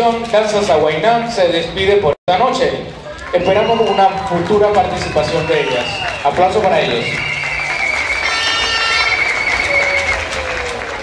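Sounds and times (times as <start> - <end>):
high whistle: 3.4 - 4.2, 5.2 - 10.4
audience applauding: 3.4 - 11.0.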